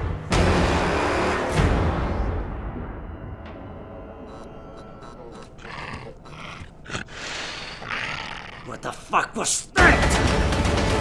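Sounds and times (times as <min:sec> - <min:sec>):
harsh growling vocal bursts: 0:05.6 - 0:09.2.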